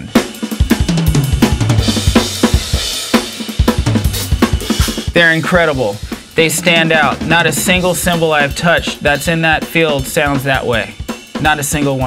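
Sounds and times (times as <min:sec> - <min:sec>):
hi-hat and crash cymbals: 0:00.0 - 0:12.0.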